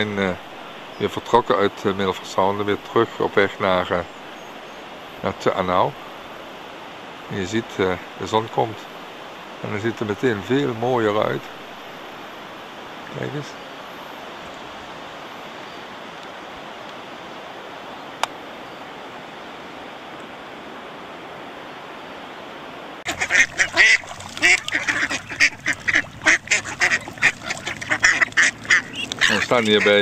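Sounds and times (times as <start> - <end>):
ducks quacking: 23.1 - 30.0.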